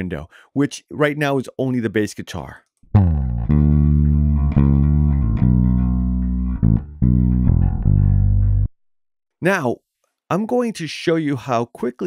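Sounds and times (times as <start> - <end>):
bass guitar notes: 2.9 - 8.7.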